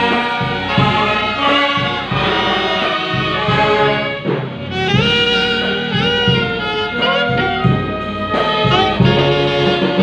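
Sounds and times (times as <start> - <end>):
brass band playing chords: 0.0 - 10.0.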